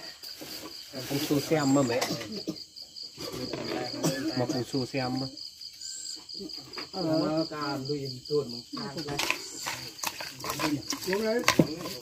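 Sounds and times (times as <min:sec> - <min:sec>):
crickets chirring: 0:00.0 - 0:12.0
stirring in metal bowl: 0:08.8 - 0:12.0.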